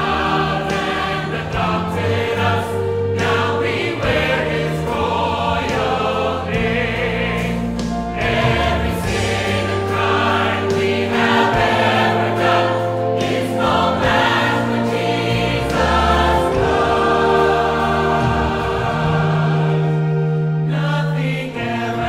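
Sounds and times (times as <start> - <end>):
church choir singing a hymn: 0.0 - 22.0
sustained low accompaniment: 0.0 - 22.0.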